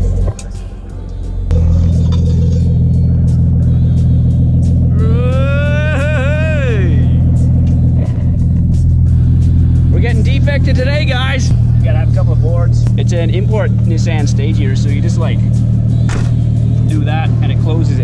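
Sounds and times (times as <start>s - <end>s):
car engine idling: 0.0s - 18.0s
loud pitched tone: 4.8s - 8.0s.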